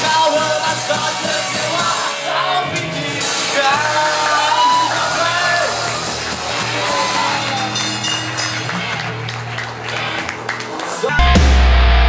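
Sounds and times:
person singing: 0:00.0 - 0:05.8, 0:10.9 - 0:12.0
live rock band playing: 0:00.0 - 0:12.0.

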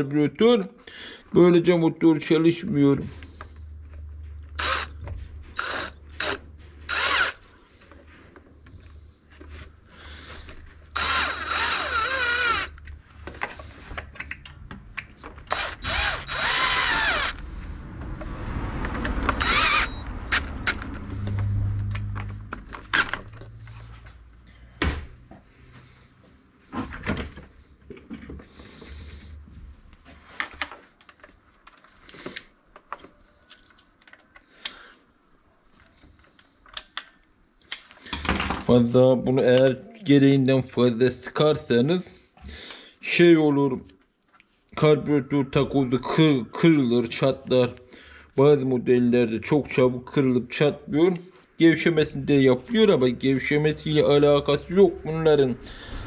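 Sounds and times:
cordless drill whirring: 0:04.5 - 0:07.4, 0:10.9 - 0:12.8, 0:15.4 - 0:17.4, 0:19.4 - 0:20.8.

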